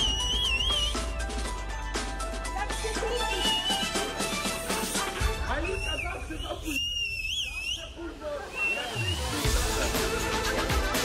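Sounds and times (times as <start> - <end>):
high whistle: 0.0 - 1.2, 5.5 - 9.5
crowd talking: 7.2 - 11.0.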